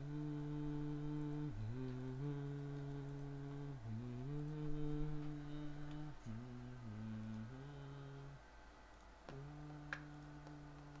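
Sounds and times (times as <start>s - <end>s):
low voice humming: 0.0s - 8.4s, 9.3s - 11.0s.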